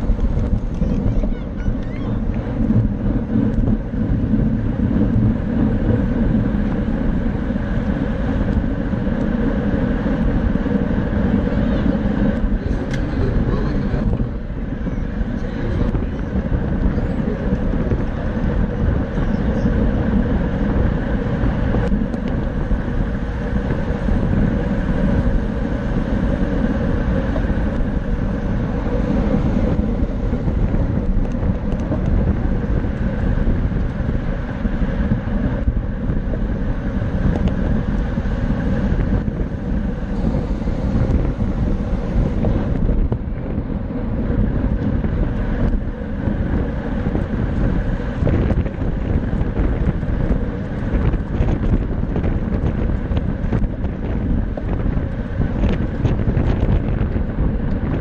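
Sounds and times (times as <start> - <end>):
bicycle tyre and road noise: 0.0 - 58.0
wind noise on microphone: 0.0 - 58.0.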